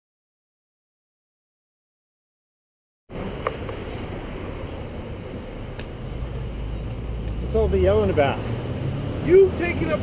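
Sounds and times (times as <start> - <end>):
wind and road noise: 3.1 - 10.0.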